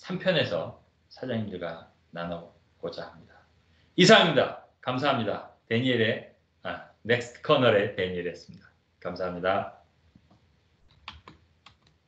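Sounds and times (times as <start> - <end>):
computer mouse clicks: 10.1 - 12.0.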